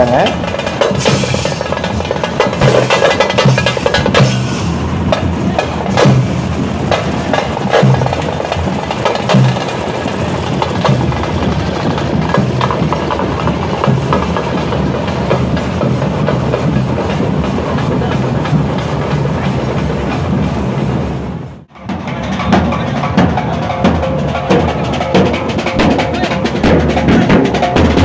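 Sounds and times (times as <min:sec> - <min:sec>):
procession drumming and music: 0:00.0 - 0:28.0.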